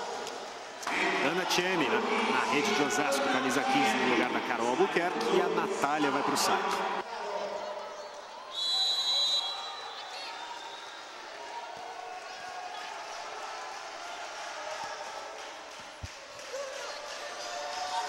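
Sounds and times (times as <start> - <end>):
gym crowd noise: 0.0 - 18.0
referee whistle blast: 8.5 - 10.0.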